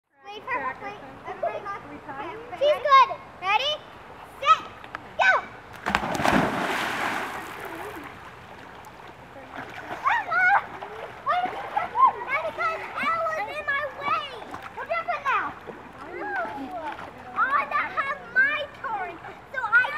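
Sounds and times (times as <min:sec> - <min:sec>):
children talking and calling out: 0:00.1 - 0:05.7, 0:09.2 - 0:19.9
kids splashing in a pool: 0:00.4 - 0:19.9.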